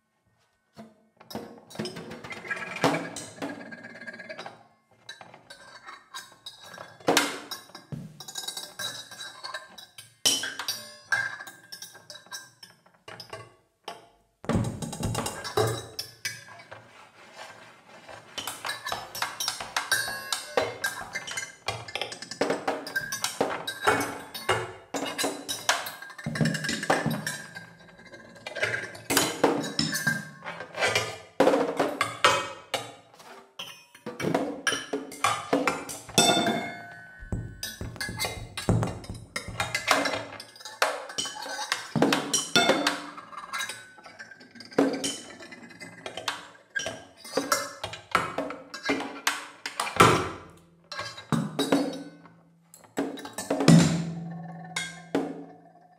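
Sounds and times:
cymbals struck by hand: 0:36.4 - 0:40.2
snare drum played with sticks: 0:37.2 - 0:40.2.

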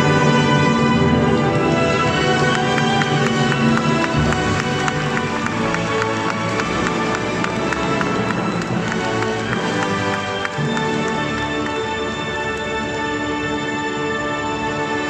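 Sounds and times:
symphony orchestra playing: 0:00.0 - 0:15.0.

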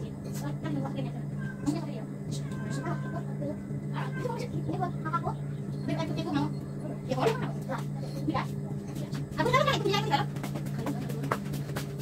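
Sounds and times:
distant people talking: 0:00.0 - 0:11.9
low electrical hum: 0:00.0 - 0:12.0.

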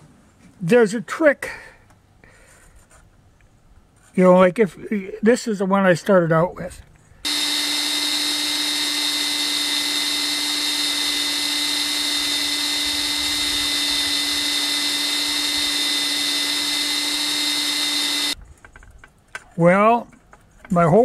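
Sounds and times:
electric drill whining: 0:07.2 - 0:18.4.

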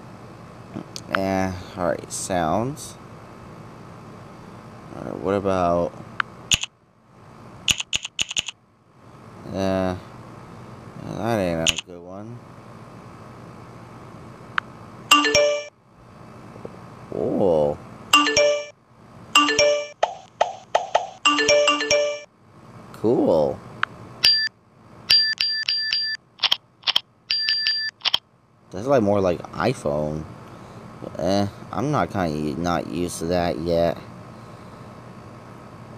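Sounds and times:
phone keyboard key clicks: 0:07.7 - 0:08.5.

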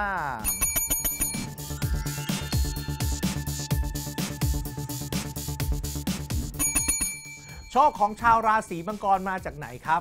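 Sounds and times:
electronic music with steady beat: 0:00.0 - 0:10.0
small metal bell trill: 0:00.4 - 0:01.9, 0:06.6 - 0:08.2
man's voice: 0:07.7 - 0:10.0.

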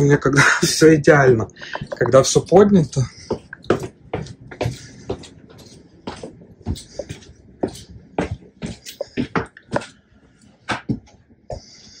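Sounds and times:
footsteps on hard floor: 0:01.8 - 0:12.0.

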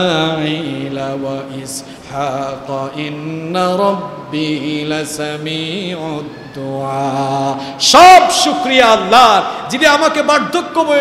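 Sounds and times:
man chanting melodically: 0:00.0 - 0:11.0.

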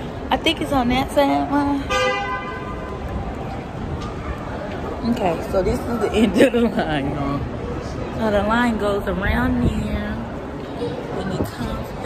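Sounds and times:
outdoor background noise: 0:00.0 - 0:12.0
vehicle horn: 0:01.9 - 0:02.9.

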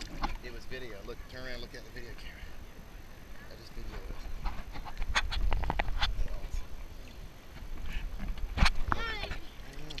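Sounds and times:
water sloshing against camera: 0:00.0 - 0:10.0.

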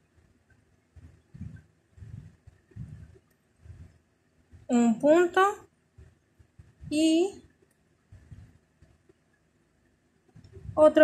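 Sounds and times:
soft low bumps of crocheting: 0:00.0 - 0:04.8, 0:05.8 - 0:11.0.

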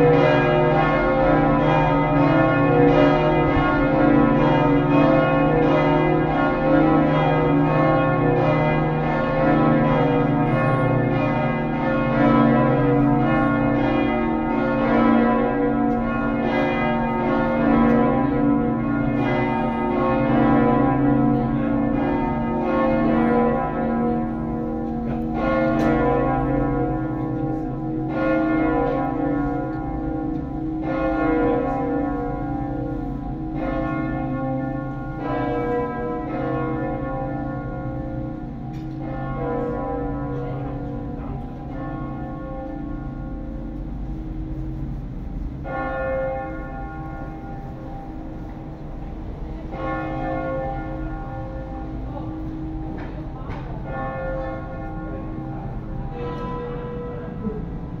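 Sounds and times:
church bells ringing: 0:00.0 - 0:58.0.

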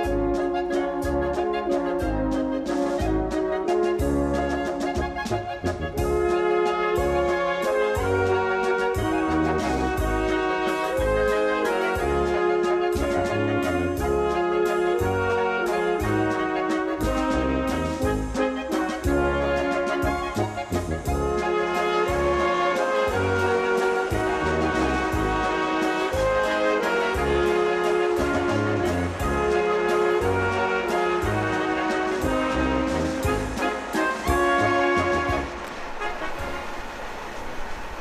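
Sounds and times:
brass music with pulsing bass: 0:00.0 - 0:36.9.

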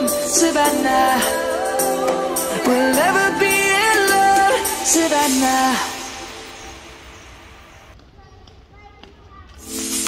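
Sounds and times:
pop song: 0:00.0 - 0:07.0.

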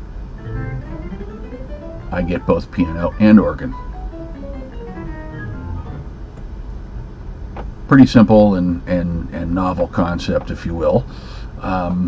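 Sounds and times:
organ and piano playing single notes: 0:00.4 - 0:06.3.

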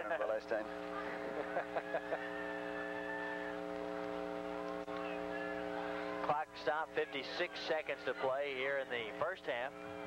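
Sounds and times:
electrical buzzing hum: 0:00.0 - 0:10.0.

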